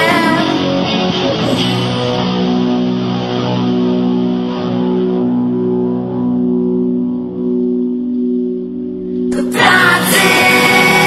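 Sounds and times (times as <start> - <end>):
guitar chord ringing with reverb: 0.0 - 11.0.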